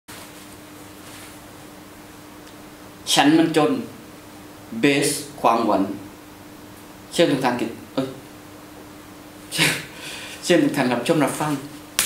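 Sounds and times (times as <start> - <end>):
man speaking: 3.0 - 4.0, 4.7 - 6.1, 7.1 - 8.2, 9.6 - 11.7.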